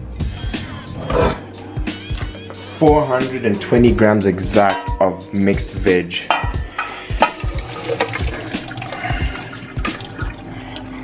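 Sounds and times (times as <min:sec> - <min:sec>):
hot water pouring into sink: 0:07.2 - 0:11.0.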